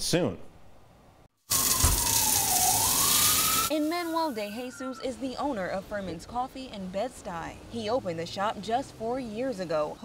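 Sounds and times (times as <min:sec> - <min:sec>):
wailing tone: 0:01.5 - 0:05.4.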